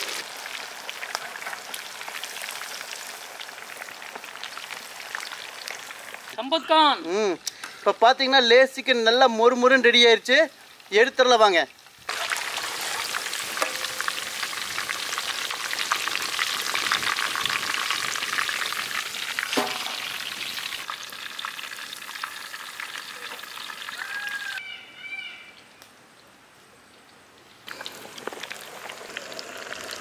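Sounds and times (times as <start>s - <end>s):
chicken deep-frying in oil: 0.0s - 6.4s, 8.8s - 24.6s, 27.7s - 30.0s
sharp knock: 19.5s - 20.1s.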